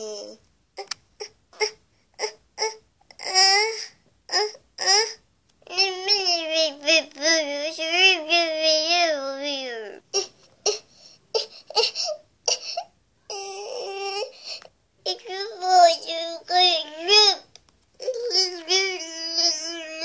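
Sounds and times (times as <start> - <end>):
baby-like crying and babbling: 0.0 - 20.0.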